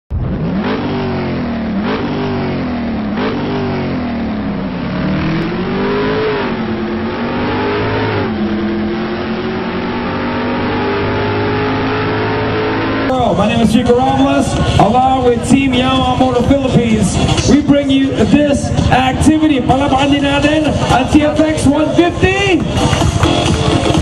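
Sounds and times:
engine revving: 0:00.1 - 0:24.0.

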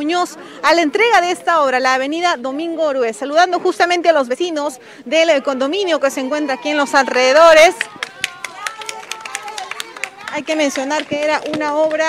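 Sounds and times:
voices chattering: 0:00.0 - 0:12.0
people clapping: 0:07.0 - 0:12.0.

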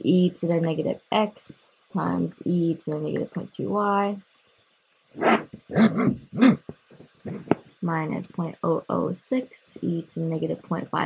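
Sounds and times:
dog barking: 0:05.2 - 0:06.6.

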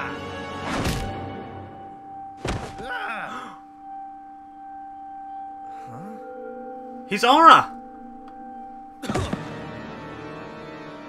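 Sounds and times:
held music note: 0:03.0 - 0:10.6.

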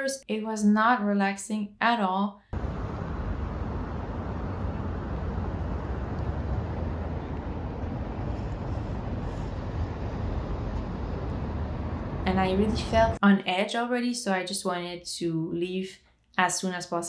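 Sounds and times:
deep low rumble: 0:02.6 - 0:13.2
passing cars: 0:02.6 - 0:13.2.

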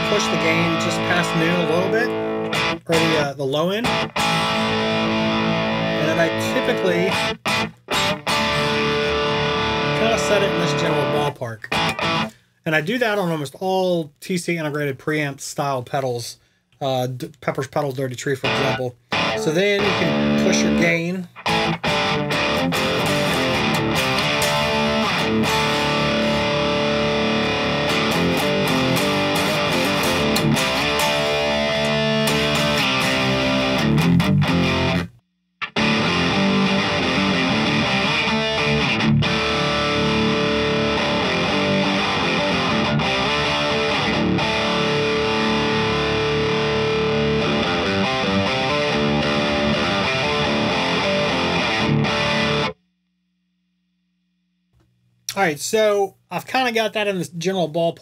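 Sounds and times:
distorted electric guitar riffing: 0:00.0 - 0:12.4, 0:18.4 - 0:52.8.

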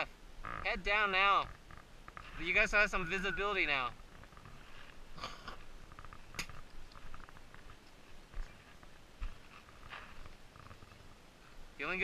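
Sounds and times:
faint crunches and knocks: 0:00.4 - 0:02.6, 0:04.0 - 0:11.6.

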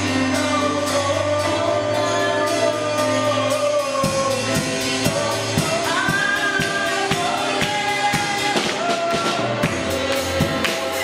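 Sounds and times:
backing voices singing: 0:00.0 - 0:11.0
steady percussion beat: 0:00.0 - 0:11.0
woman singing gospel: 0:00.0 - 0:11.0.

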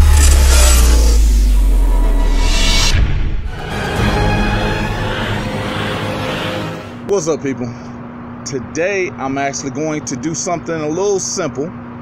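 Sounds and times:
deep bass rumble: 0:00.0 - 0:05.5.

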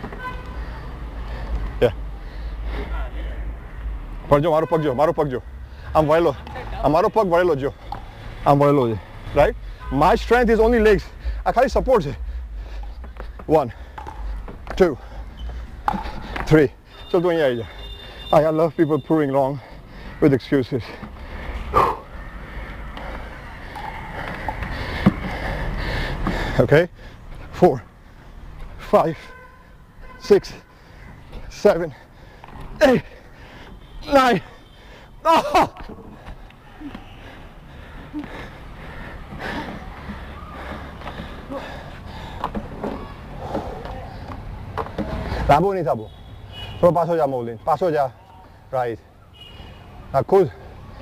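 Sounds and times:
person breathing hard: 0:00.5 - 0:03.6, 0:12.2 - 0:14.4, 0:21.0 - 0:28.4, 0:36.1 - 0:42.7.

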